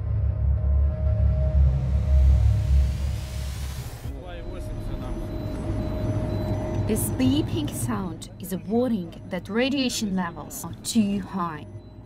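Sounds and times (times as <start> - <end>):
dark deep music: 0.0 - 12.0
radiation meter beeping: 4.1 - 12.0.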